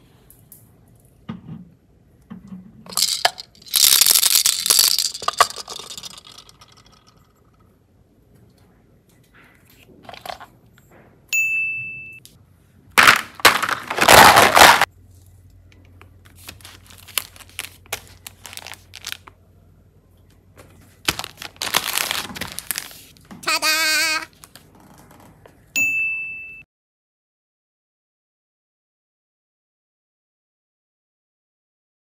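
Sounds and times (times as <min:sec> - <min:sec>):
plastic wrapping crinkling: 0:02.9 - 0:07.0, 0:13.4 - 0:14.9, 0:16.3 - 0:19.4, 0:21.0 - 0:23.7.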